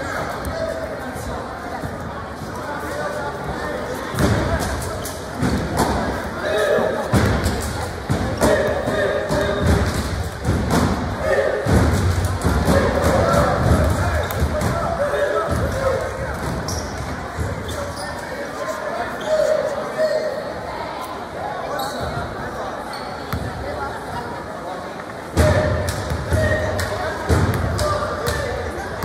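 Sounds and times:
chatter of voices: 0.0s - 29.0s.

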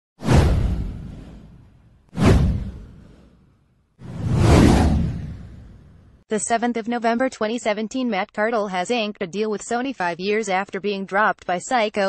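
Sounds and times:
whoosh sound effects: 0.2s - 3.4s, 4.0s - 6.2s.

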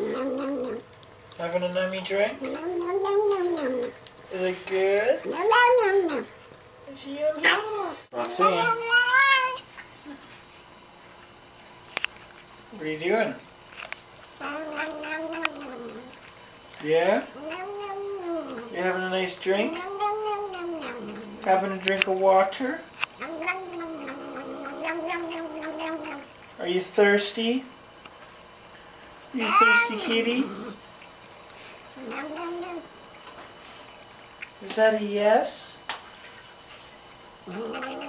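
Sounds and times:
cat moaning call: 0.0s - 0.8s, 14.4s - 16.2s, 17.4s - 18.8s, 19.7s - 21.4s, 23.2s - 26.3s, 32.0s - 32.9s, 37.5s - 38.0s
cat drinking water: 0.0s - 34.6s.

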